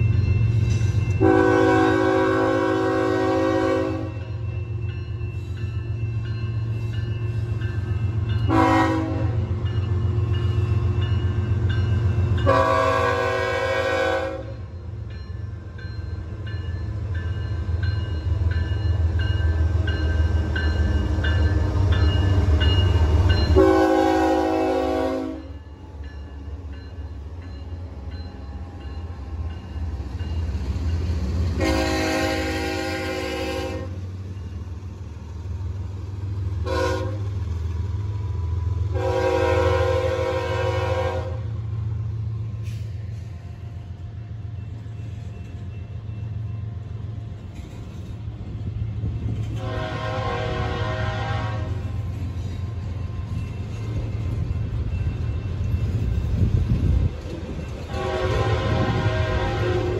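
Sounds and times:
diesel locomotive engine rumble: 0.0 - 59.9
train air horn blasts: 1.2 - 4.3, 8.5 - 9.5, 12.4 - 14.6, 23.6 - 25.6, 31.6 - 34.0, 36.6 - 37.4, 38.9 - 41.6, 49.6 - 52.0, 57.8 - 59.9.

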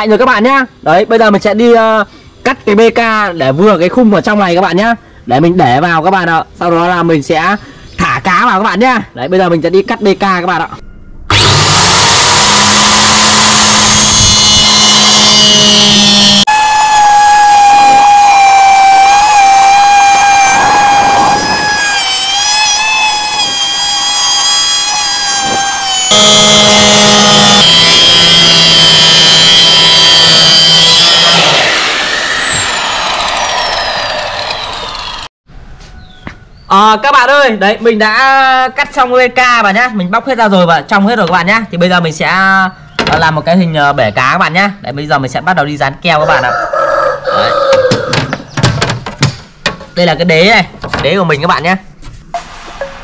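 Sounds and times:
circular saw cutting plastic: 11.3 - 35.3.

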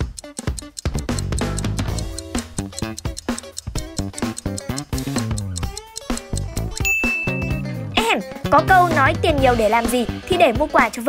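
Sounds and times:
light music with plucked strings: 0.8 - 11.0
high bell-like ding: 6.8 - 7.7.

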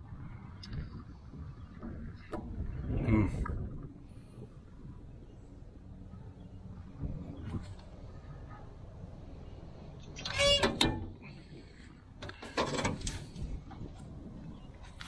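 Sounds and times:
hinge squealing: 10.1 - 11.2.

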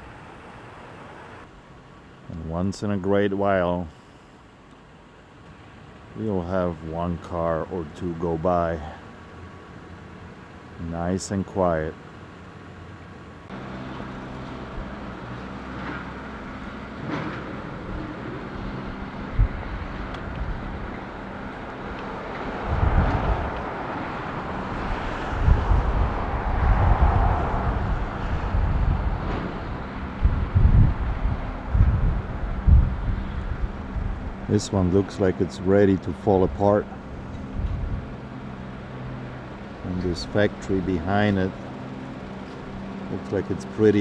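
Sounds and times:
vehicle engine hum: 0.0 - 44.0
wind buffeting microphone: 17.1 - 35.5, 36.2 - 38.8.

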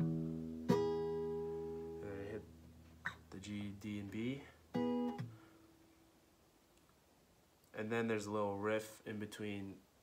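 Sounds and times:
acoustic guitar strings plucked: 0.0 - 4.0, 4.7 - 5.5.

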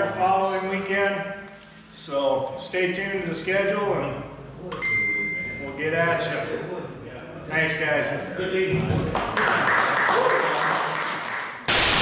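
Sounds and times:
crowd applauding: 9.2 - 12.0
loud static hiss: 11.7 - 12.0.

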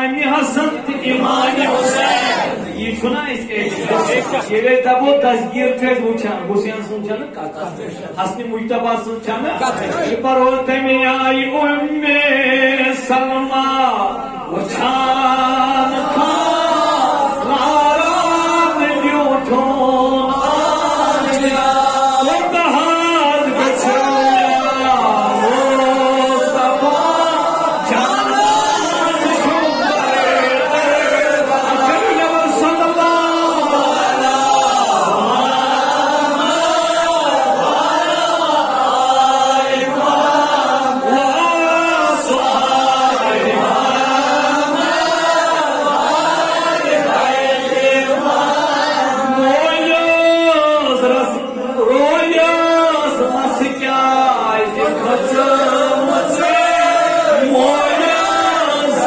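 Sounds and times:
man chanting into a microphone: 0.0 - 1.9, 8.2 - 39.7, 40.4 - 44.8, 49.0 - 59.0.

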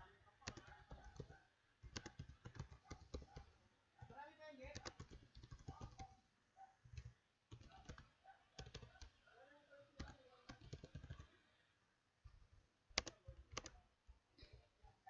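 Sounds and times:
typing on computer keyboard: 0.4 - 6.2, 6.8 - 9.2, 10.0 - 11.4, 12.9 - 13.9.

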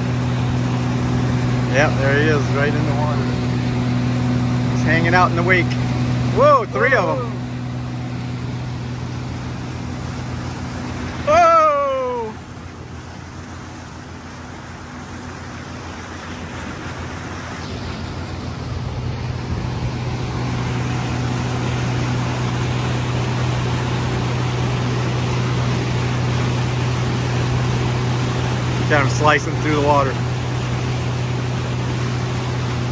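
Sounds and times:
outboard motor running: 0.0 - 32.9
wake water rushing: 0.0 - 32.9
wind: 0.0 - 32.9
person exclaiming: 6.3 - 7.4, 11.2 - 12.4.

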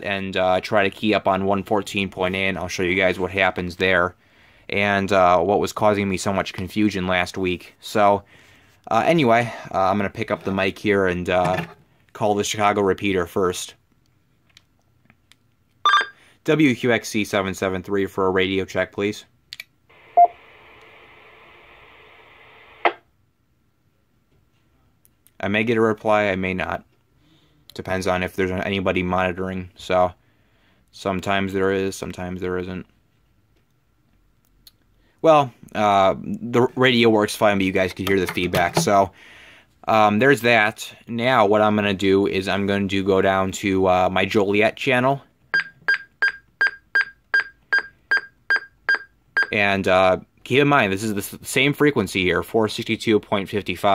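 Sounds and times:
radio short high beeps: 15.9 - 16.2
radio speaker hiss: 19.9 - 23.0.

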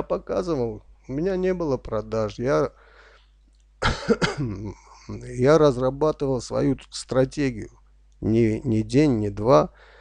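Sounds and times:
man coughing: 3.8 - 4.9
man clearing throat: 3.8 - 5.0.

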